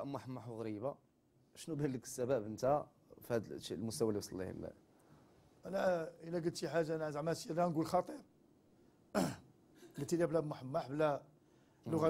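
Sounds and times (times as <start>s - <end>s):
person clearing throat: 9.2s - 9.5s.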